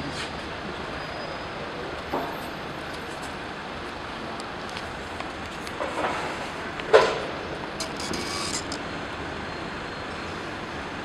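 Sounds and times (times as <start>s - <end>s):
road traffic rumble and hiss: 0.0s - 11.0s.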